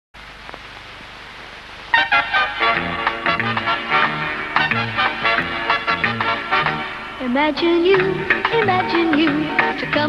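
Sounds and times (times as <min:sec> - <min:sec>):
analogue recording hiss: 0:00.2 - 0:10.0.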